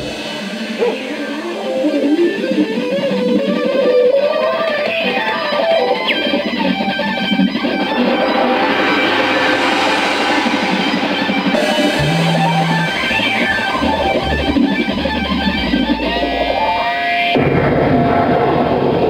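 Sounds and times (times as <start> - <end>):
rock band playing: 0.0 - 17.4
electric guitar melody: 0.0 - 17.6
low sustained note: 7.9 - 16.9.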